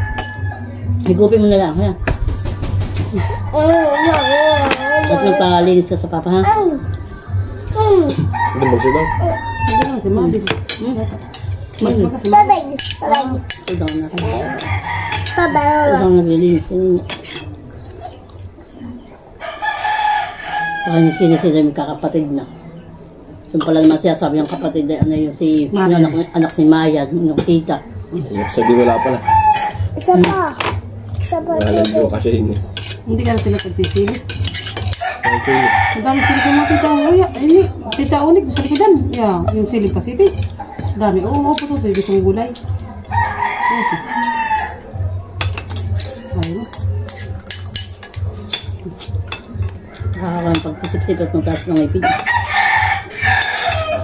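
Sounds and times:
rooster crowing: 0.0s - 1.0s, 3.2s - 6.3s, 8.1s - 10.3s, 13.4s - 16.3s, 19.3s - 22.0s, 25.7s - 26.9s, 28.0s - 30.1s, 34.8s - 38.7s, 42.8s - 45.3s, 49.6s - 54.0s
cutlery clinking on dishes: 9.7s - 15.5s, 17.0s - 17.6s, 30.6s - 42.7s, 45.4s - 54.0s.

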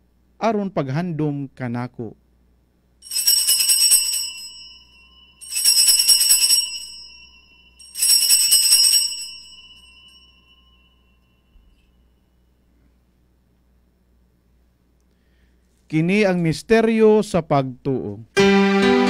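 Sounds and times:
altar bells jingling: 3.0s - 12.5s.

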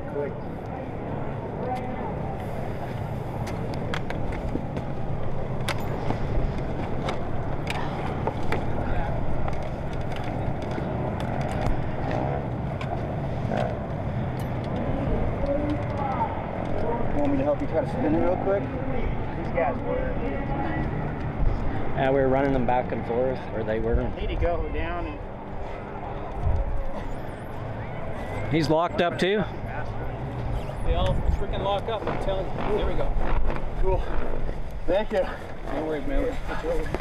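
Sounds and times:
indistinct talking: 0.0s - 37.0s
motorcycle engines rumbling: 0.0s - 37.0s
wind: 0.0s - 37.0s.

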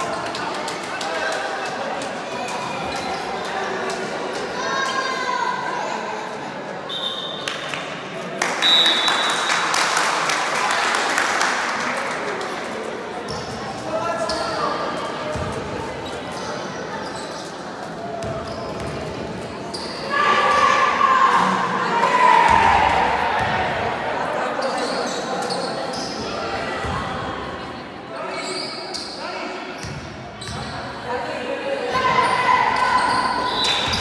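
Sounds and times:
spectators' voices and shouts: 0.0s - 9.7s, 10.4s - 34.0s
referee whistle blasts: 6.9s - 7.5s, 8.6s - 9.5s.

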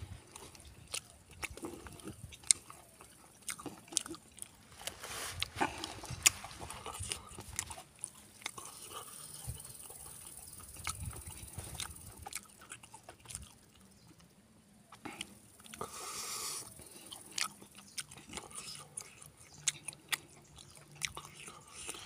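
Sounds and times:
person chewing: 0.0s - 14.3s, 14.9s - 22.0s.

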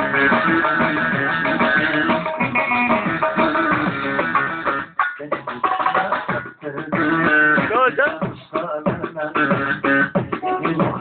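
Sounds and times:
man singing into a microphone: 0.0s - 2.3s, 5.0s - 11.0s
electronic keyboard plucked melody: 0.0s - 6.1s, 9.5s - 11.0s.

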